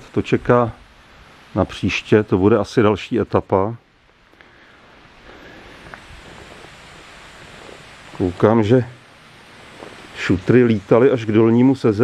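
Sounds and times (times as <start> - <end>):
stream rushing: 3.9 - 12.0
faint ticks: 4.0 - 4.7, 5.3 - 8.2.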